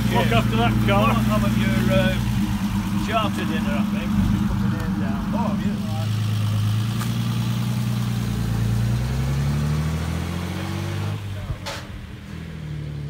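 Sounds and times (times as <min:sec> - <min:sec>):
car engine running: 0:00.0 - 0:09.5.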